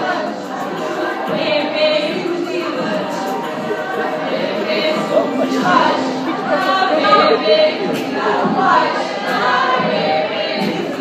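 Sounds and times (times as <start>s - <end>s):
group of women singing: 0.0s - 11.0s.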